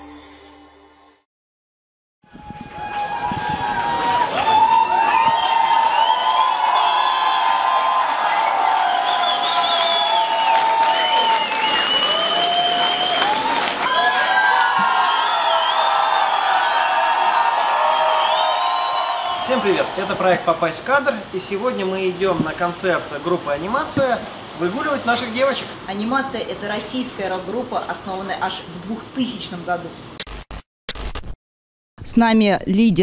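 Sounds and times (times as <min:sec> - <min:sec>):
concert crowd cheering and screaming: 0:02.3 - 0:20.3.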